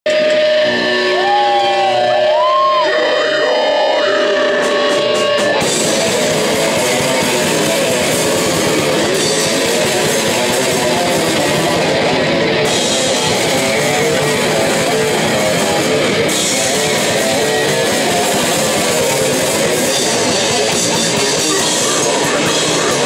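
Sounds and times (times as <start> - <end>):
metal band playing live: 0.0 - 23.0
electric guitar note with pitch bends: 0.1 - 23.0.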